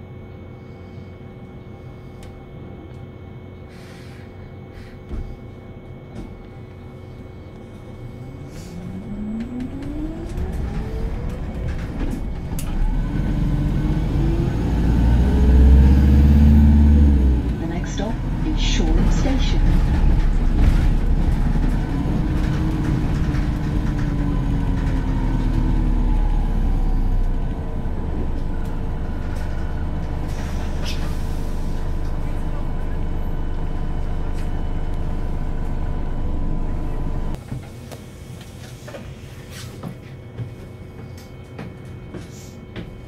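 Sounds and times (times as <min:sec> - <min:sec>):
engine whine: 0:00.0 - 0:37.8
bus engine rumble: 0:03.7 - 0:40.2.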